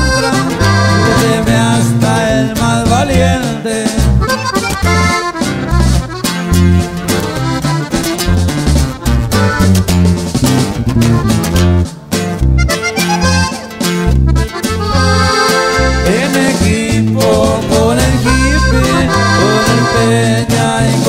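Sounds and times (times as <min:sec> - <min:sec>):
accordion melody: 0:00.0 - 0:21.0
bass line: 0:00.0 - 0:21.0
strummed guitar: 0:00.0 - 0:21.0.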